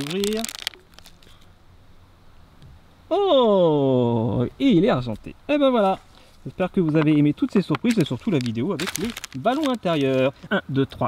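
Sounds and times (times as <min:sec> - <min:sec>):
foil pouch rustling: 0:00.0 - 0:01.4, 0:05.8 - 0:10.5.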